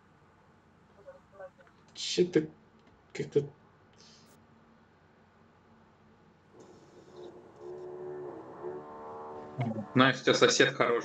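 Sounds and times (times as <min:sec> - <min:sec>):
power tool whine through wall: 0:06.6 - 0:10.0.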